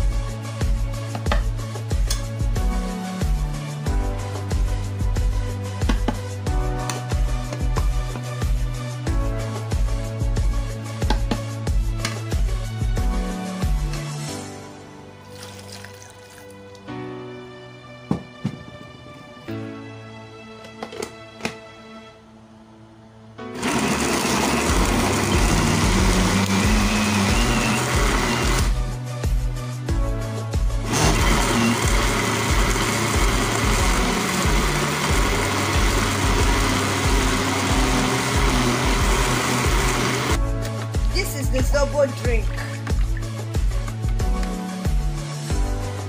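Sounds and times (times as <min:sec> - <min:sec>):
blender grinding fruit: 0:23.4 - 0:28.8, 0:30.8 - 0:40.4.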